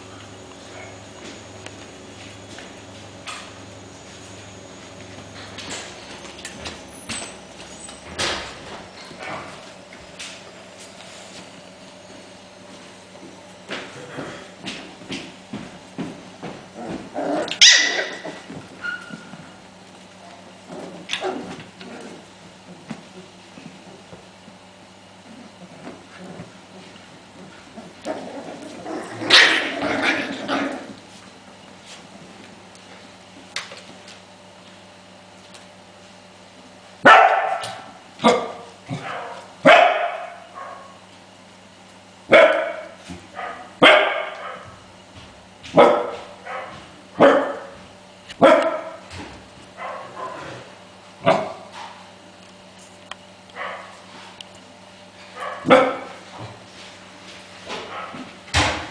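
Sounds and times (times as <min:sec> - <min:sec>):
puppy growling: 0:16.8 - 0:18.5, 0:20.6 - 0:22.9, 0:25.2 - 0:31.1
puppy high-pitched bark: 0:17.6 - 0:19.1, 0:37.0 - 0:41.0, 0:42.3 - 0:44.7, 0:45.8 - 0:47.7, 0:48.4 - 0:49.0, 0:49.8 - 0:50.4, 0:53.6 - 0:54.0, 0:55.4 - 0:56.2.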